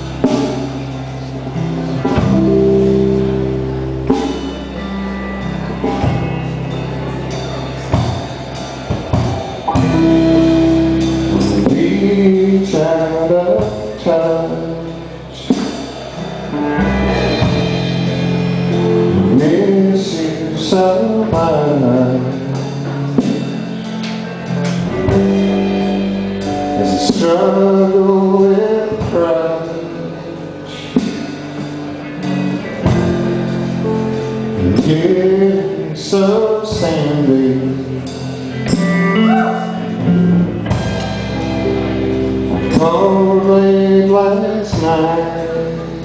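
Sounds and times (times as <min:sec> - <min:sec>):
live band playing guitars and drums: 0:00.0 - 0:46.0.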